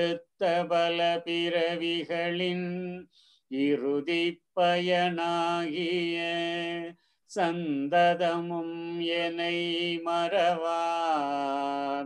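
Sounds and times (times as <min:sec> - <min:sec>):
person chanting a prayer: 0:00.0 - 0:12.0.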